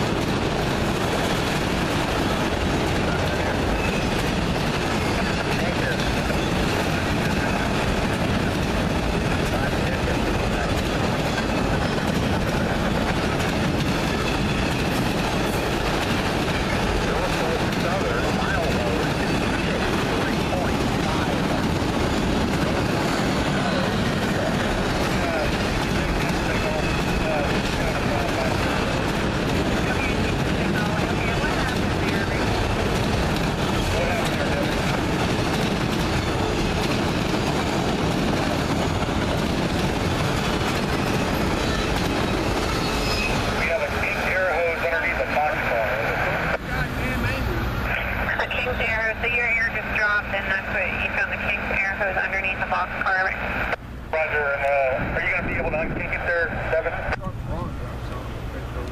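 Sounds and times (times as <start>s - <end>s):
steel wheels rumbling on rails: 0.0s - 58.9s.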